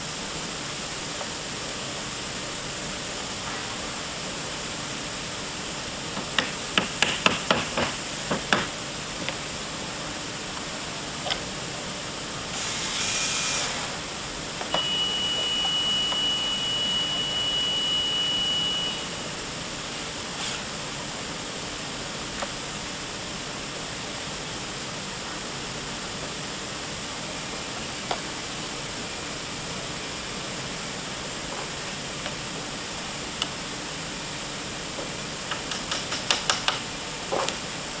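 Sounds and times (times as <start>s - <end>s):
cordless drill whine: 14.7s - 19.2s.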